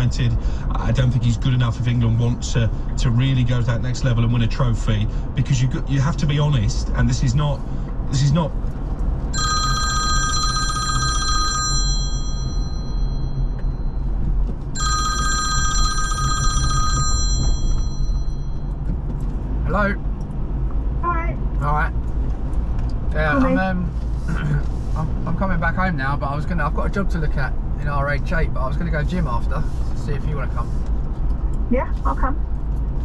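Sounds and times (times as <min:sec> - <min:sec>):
road and engine noise: 0:00.0 - 0:33.0
phone ringtone: 0:09.4 - 0:14.1, 0:14.8 - 0:18.7
voice over phone call: 0:23.2 - 0:24.6.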